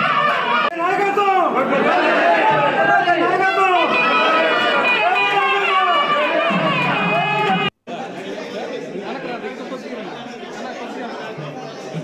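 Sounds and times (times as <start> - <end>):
crowd chatter in large room: 0.0 - 12.0.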